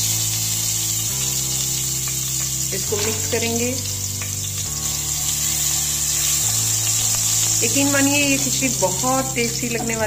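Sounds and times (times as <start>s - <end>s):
background music: 0.0s - 10.0s
ginger sizzling in hot ghee: 0.0s - 10.0s.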